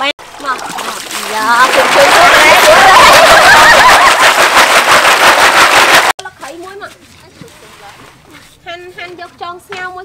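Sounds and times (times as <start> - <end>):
water from a hose splashing: 0.1 - 3.0.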